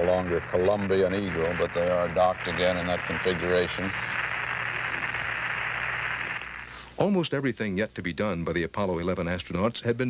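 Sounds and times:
radio static hiss: 0.0s - 7.2s.

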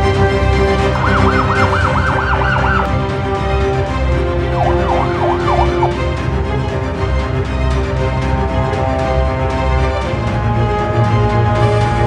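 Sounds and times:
music with held notes: 0.0s - 12.0s
police siren yelping: 0.7s - 3.0s, 4.4s - 6.1s.

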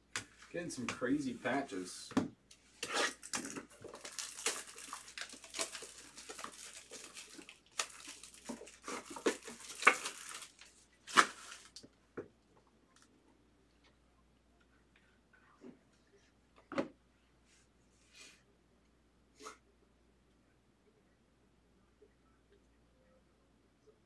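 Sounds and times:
wrapper being torn open: 2.9s - 11.8s.

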